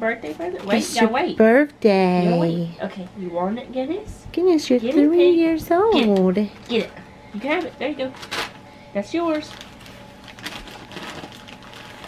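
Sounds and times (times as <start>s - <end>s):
wrapping paper crinkling: 8.0s - 8.6s, 9.3s - 12.0s.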